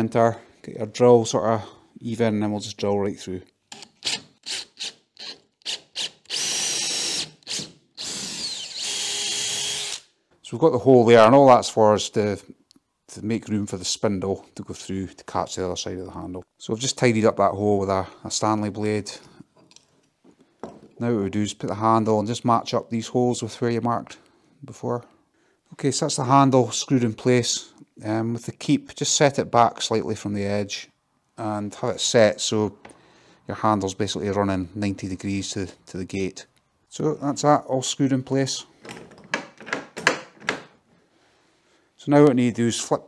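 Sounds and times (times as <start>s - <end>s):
latch handle clicks and knocks: 38.8s - 40.8s.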